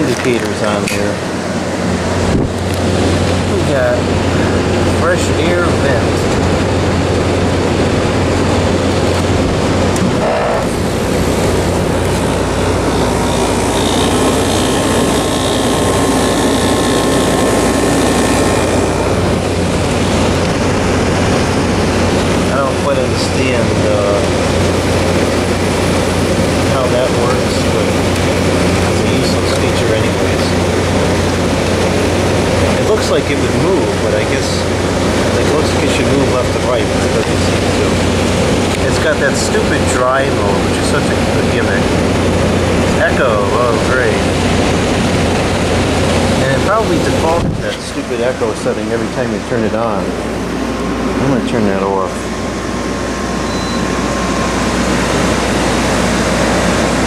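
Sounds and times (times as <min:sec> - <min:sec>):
air conditioner fan rushing: 0:00.0 - 0:57.0
deeper hum: 0:00.0 - 0:57.0.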